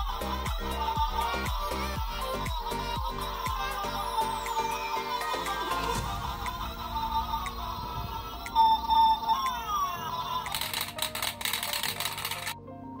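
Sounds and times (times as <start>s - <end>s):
electronic toy melody: 0.0s - 12.6s.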